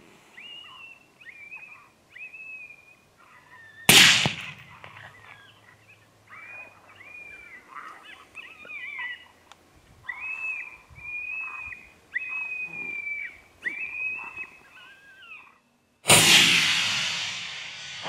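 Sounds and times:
coyote distress yelps: 0.4 - 4.0, 4.7 - 9.4, 10.0 - 15.6.

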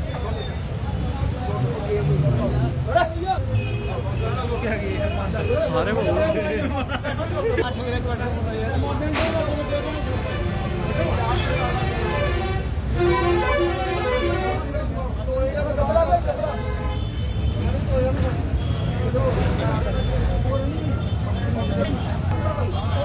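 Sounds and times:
people's voices: 0.0 - 23.0
street traffic: 0.0 - 23.0
vehicle horn toots: 11.4 - 14.6.

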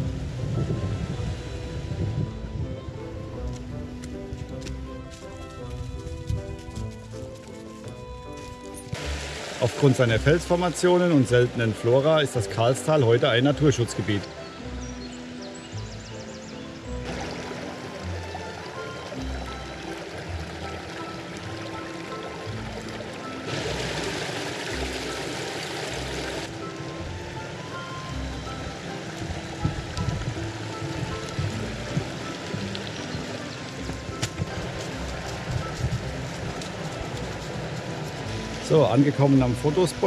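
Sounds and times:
background music: 0.0 - 40.0
stream rushing over rocks: 8.8 - 16.1, 16.7 - 40.0.

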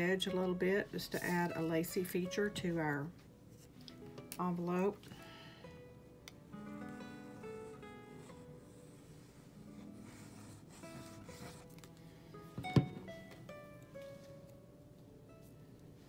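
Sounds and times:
acoustic guitar music: 0.0 - 16.0.

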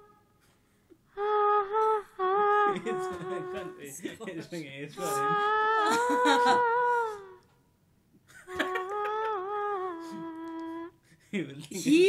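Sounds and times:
person humming a long note: 0.0 - 0.3, 1.1 - 3.9, 5.0 - 7.5, 8.5 - 11.0
person speaking: 2.4 - 7.3, 11.4 - 12.0.

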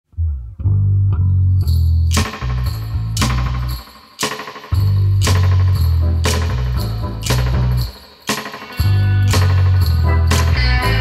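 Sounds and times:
bass guitar playing low notes: 0.1 - 3.8, 4.8 - 7.9, 8.8 - 11.0.

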